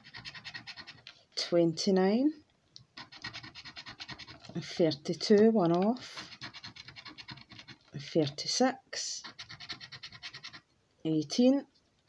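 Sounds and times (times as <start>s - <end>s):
scratcher scraping a scratchcard: 0.0s - 1.1s, 3.0s - 4.6s, 5.6s - 7.9s, 9.2s - 10.6s.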